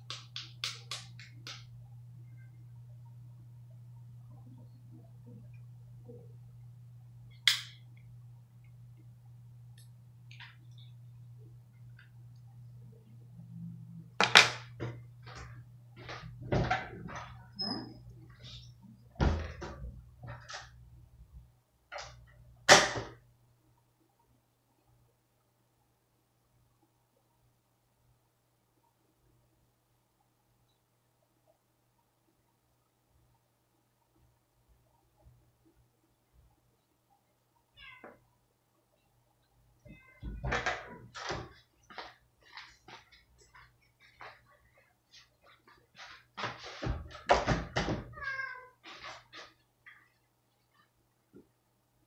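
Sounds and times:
cat meowing: 37.7 - 38.2, 48.1 - 48.8.

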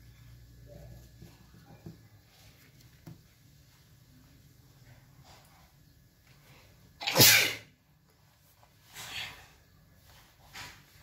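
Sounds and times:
person sneezing: 7.0 - 7.7.

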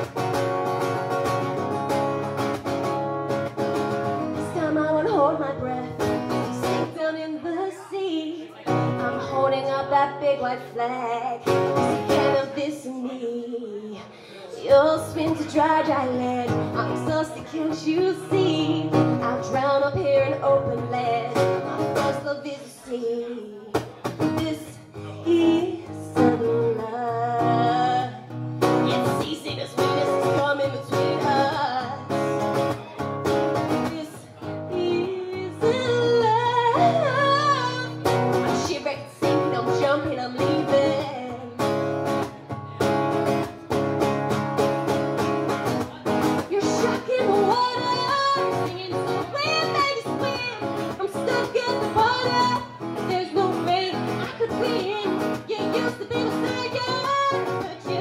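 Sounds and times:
acoustic guitar: 0.0 - 58.0
woman singing: 3.5 - 32.6, 33.6 - 42.3, 45.8 - 58.0.

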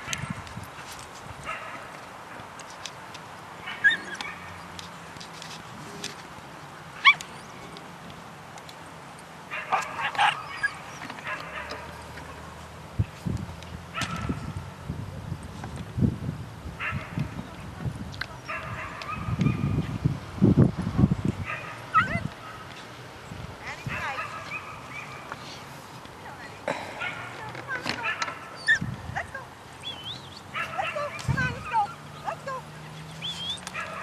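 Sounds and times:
puppies yipping and whining: 3.7 - 4.7, 7.0 - 7.7, 9.7 - 12.4, 21.9 - 22.2, 28.0 - 34.0.

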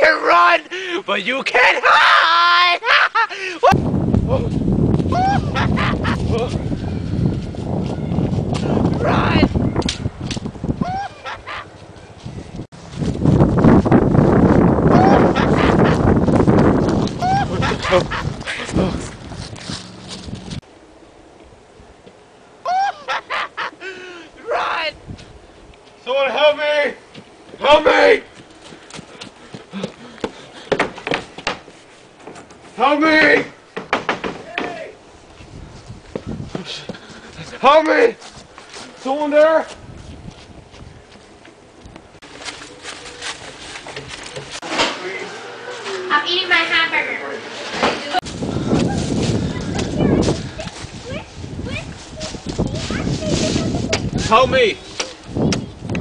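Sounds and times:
footsteps crunching through dry leaves: 11.5 - 14.9, 16.0 - 20.6, 38.2 - 41.4, 42.2 - 44.6, 48.2 - 55.2.

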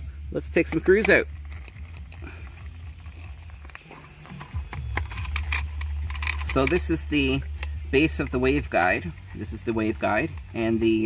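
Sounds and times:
high whine: 0.0 - 11.0
sharp clicks: 4.3 - 9.3.

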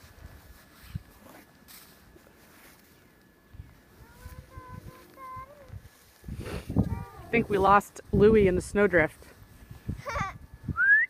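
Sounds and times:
faint high-pitched vocal sound: 6.7 - 7.4.

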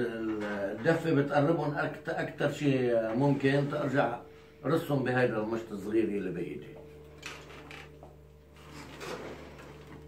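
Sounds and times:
steady low hum: 0.0 - 10.0
rubbing and scraping on loom: 8.6 - 10.0.

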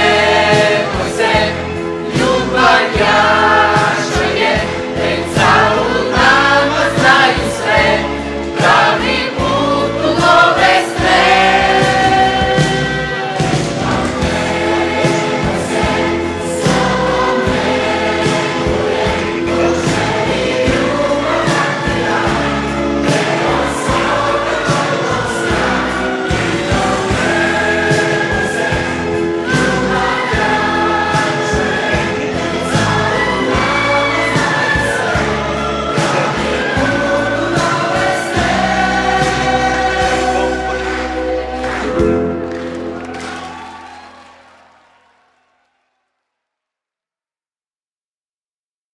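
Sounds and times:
mixed choir singing: 0.0 - 42.5
instrumental accompaniment with beat: 0.0 - 44.4.

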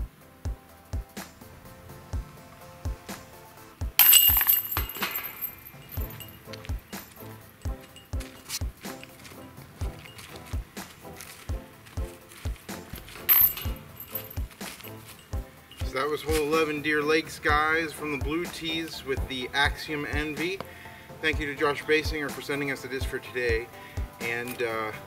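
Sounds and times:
background music with steady beat: 0.0 - 25.0
metal chains jangling: 4.0 - 16.8.

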